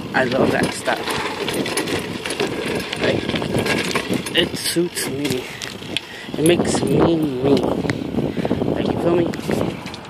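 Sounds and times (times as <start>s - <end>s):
bicycle freewheel and chain clicking: 0.0s - 8.6s
road noise: 0.0s - 10.0s.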